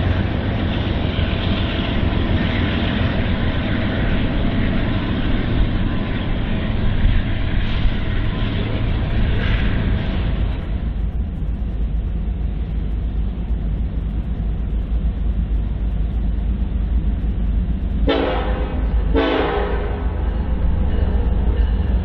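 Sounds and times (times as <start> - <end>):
locomotive engine rumble: 0.0 - 22.0
train air horn: 18.1 - 20.2.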